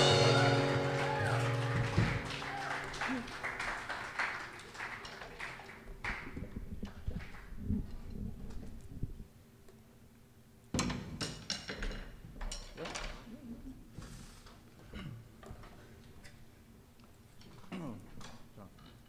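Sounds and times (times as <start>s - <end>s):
acoustic guitar chord ringing: 0.0s - 2.4s.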